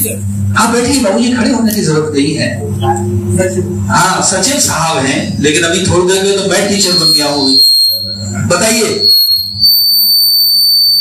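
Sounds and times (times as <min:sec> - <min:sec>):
faint low electrical hum: 0:00.0 - 0:10.7
high-pitched microphone whine: 0:00.0 - 0:11.0.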